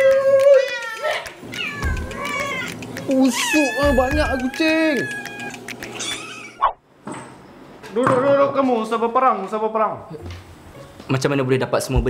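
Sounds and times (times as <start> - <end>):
cats meowing: 0.5 - 6.7.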